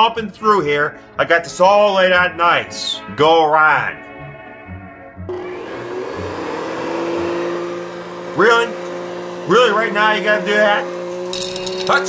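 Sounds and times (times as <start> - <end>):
vacuum cleaner motor whining: 5.3 - 12.0.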